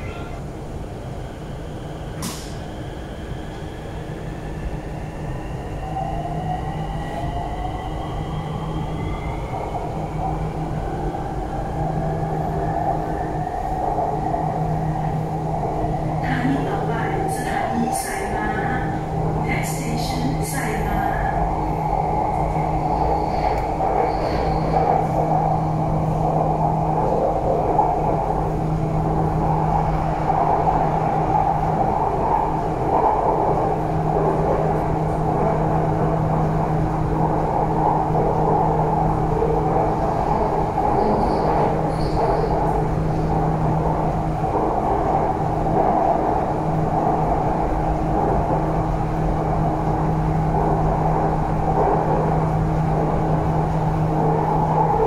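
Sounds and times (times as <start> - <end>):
metro train rumbling: 0.0 - 55.0
constant low hum: 6.8 - 55.0.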